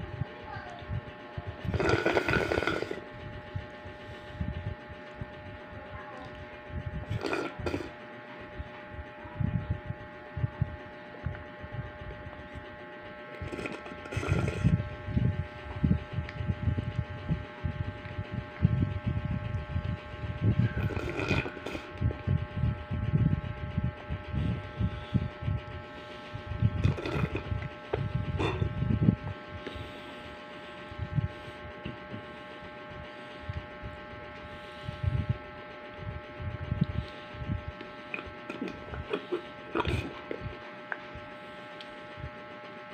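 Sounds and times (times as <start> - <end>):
electrical hum: 0.0 - 42.9.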